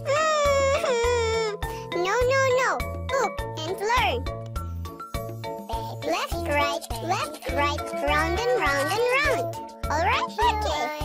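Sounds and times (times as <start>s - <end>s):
children's song backing track: 1.6s - 11.0s.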